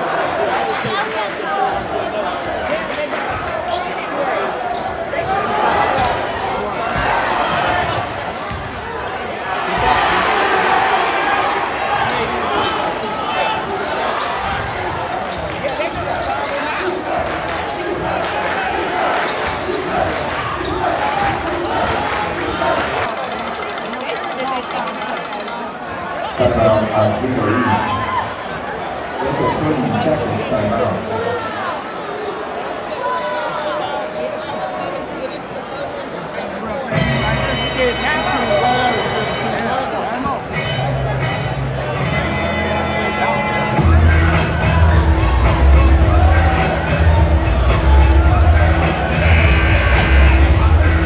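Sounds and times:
crowd shouting and chattering: 0:00.0 - 0:51.0.

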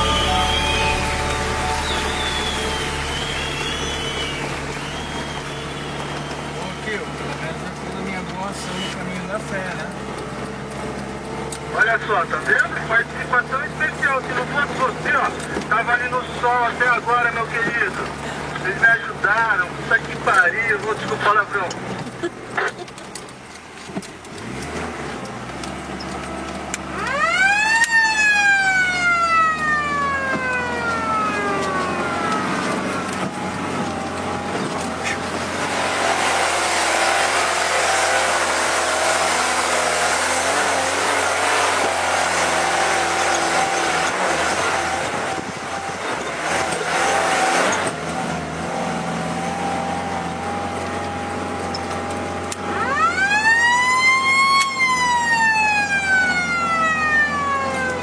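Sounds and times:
car engine under load: 0:00.0 - 0:58.0
high drivetrain whine: 0:00.0 - 0:58.0
road noise: 0:00.0 - 0:58.0.

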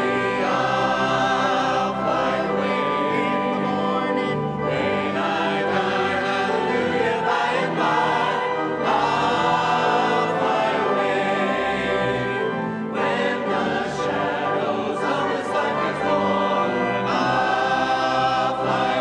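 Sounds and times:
church choir singing a hymn: 0:00.0 - 0:19.0.

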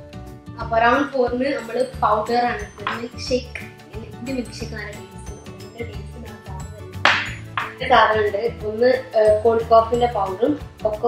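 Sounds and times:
background music: 0:00.0 - 0:11.0
voice: 0:00.6 - 0:07.0, 0:07.8 - 0:11.0
glass clink: 0:07.1 - 0:07.8.

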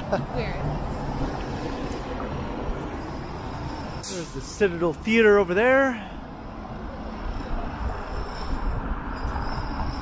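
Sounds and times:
rumble of cars driving: 0:00.0 - 0:10.0.

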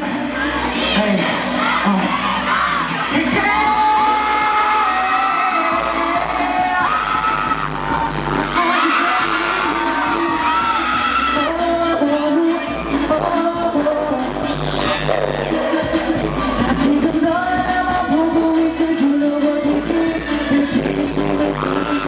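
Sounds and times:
live pop song through speakers: 0:00.0 - 0:22.0.

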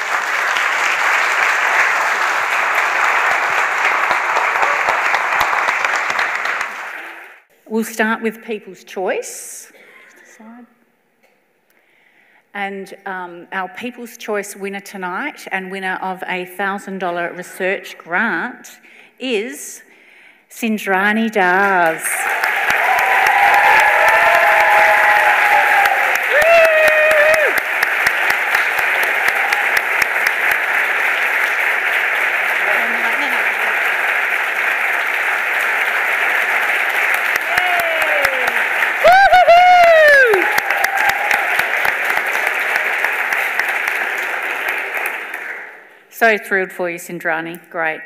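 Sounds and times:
audience applause: 0:00.0 - 0:07.4, 0:21.8 - 0:45.9.

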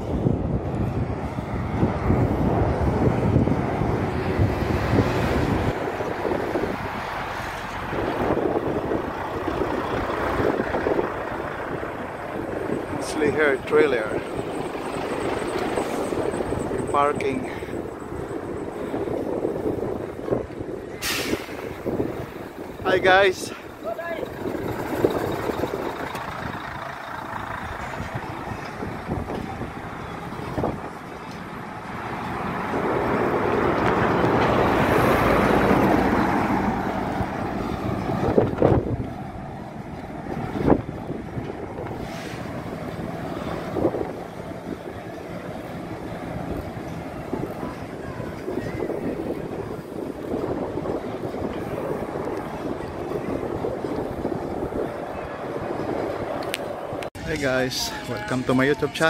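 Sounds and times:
heavy truck road noise: 0:00.0 - 0:59.0
truck passing: 0:00.0 - 0:59.0
wind on microphone: 0:00.0 - 0:59.0.

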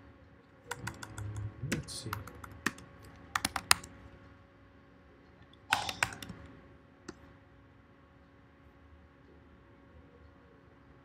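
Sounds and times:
computer keyboard typing: 0:00.7 - 0:04.0, 0:05.6 - 0:06.5.

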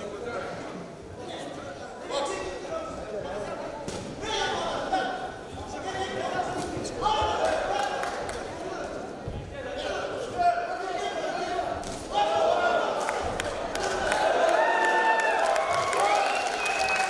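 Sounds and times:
men shouting in a hall: 0:04.2 - 0:08.7, 0:09.6 - 0:16.9.

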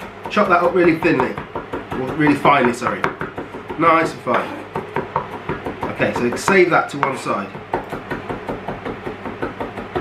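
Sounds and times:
knife chopping on wooden board: 0:00.0 - 0:10.0.

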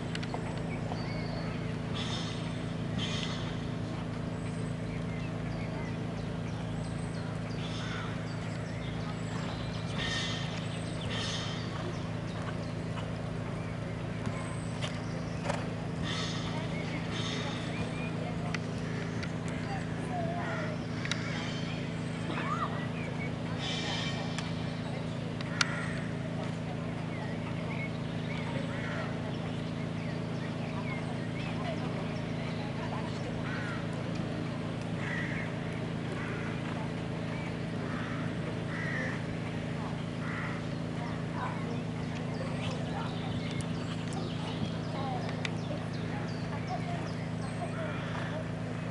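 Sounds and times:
low hum: 0:00.0 - 0:48.9.

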